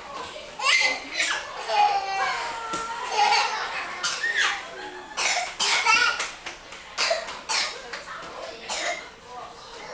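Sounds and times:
child coughing: 4.0 - 4.5, 5.2 - 6.2, 7.0 - 7.8, 8.7 - 9.1.

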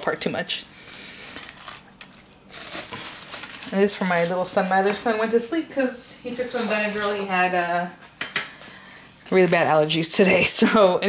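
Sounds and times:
plastic cling wrap crinkling: 0.8 - 5.5, 6.3 - 7.4, 9.2 - 10.7.

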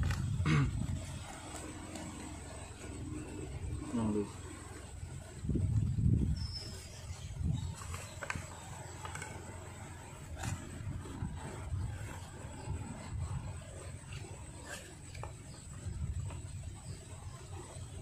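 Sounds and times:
low rumbling: 0.0 - 18.0.

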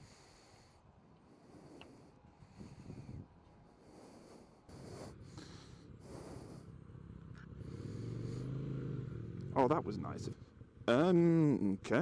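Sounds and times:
motorcycle engine running: 4.7 - 12.0.

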